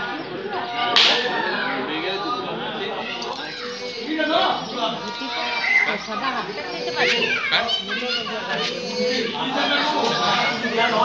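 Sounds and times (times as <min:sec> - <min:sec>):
children shouting and chattering: 0:00.0 - 0:11.0
crowd talking: 0:00.0 - 0:11.0.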